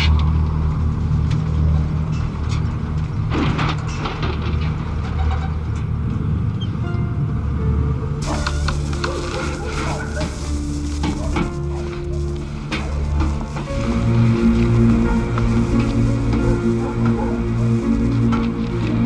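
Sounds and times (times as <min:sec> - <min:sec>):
deep wind rumble: 0:00.0 - 0:19.0
music with long held notes: 0:06.8 - 0:19.0
hissing rush with crackling debris: 0:08.2 - 0:19.0.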